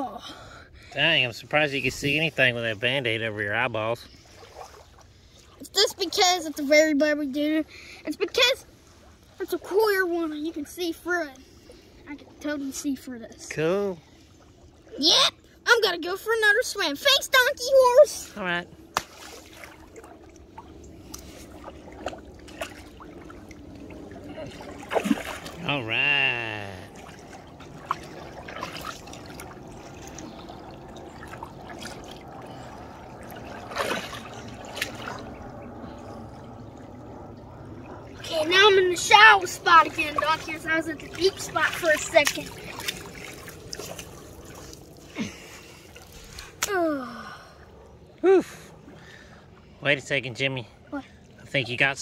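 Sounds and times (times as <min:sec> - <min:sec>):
water lapping and trickling: 0:00.0 - 0:52.0
small splashes: 0:03.8 - 0:06.8, 0:18.1 - 0:49.8.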